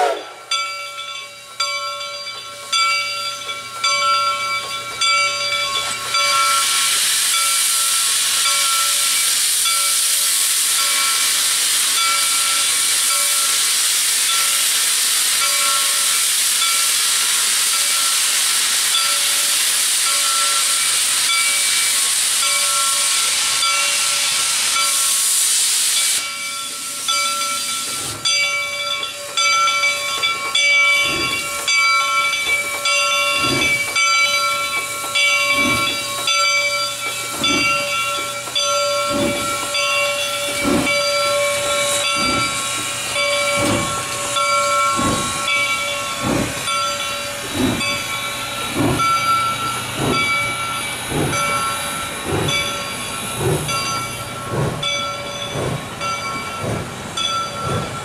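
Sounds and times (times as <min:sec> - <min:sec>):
steam hissing from cylinder cocks: 0:00.0 - 0:58.0
steam locomotive exhaust chuffs: 0:00.0 - 0:58.0.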